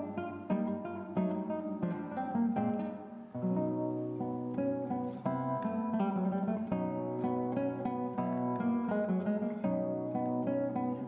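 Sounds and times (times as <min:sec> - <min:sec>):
classical guitar fingerstyle: 0:00.0 - 0:11.0.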